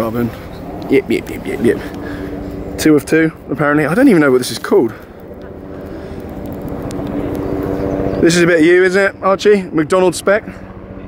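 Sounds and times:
car engine idling: 0:00.0 - 0:10.7.

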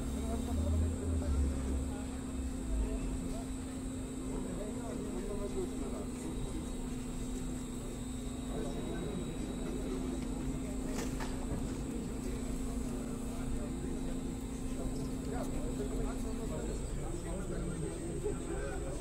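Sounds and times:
people talking: 0:00.0 - 0:19.0.

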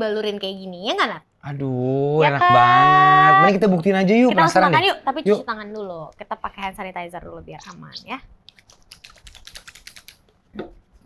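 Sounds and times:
hands rubbing: 0:08.5 - 0:11.0.

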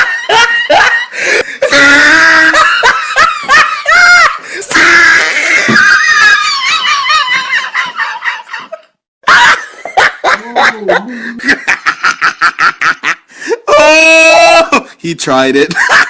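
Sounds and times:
loud laughter: 0:00.0 - 0:14.8.

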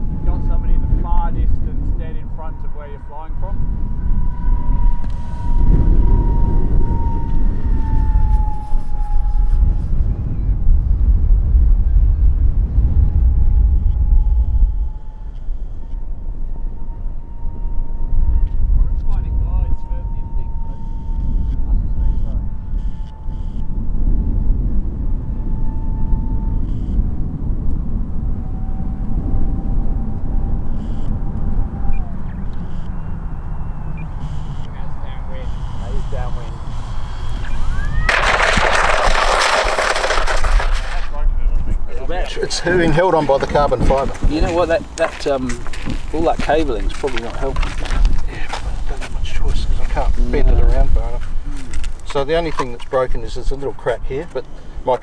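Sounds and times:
wind buffeting microphone: 0:00.0 - 0:55.0
model plane motor whine: 0:03.8 - 0:10.2, 0:19.7 - 0:23.8, 0:29.5 - 0:41.0.

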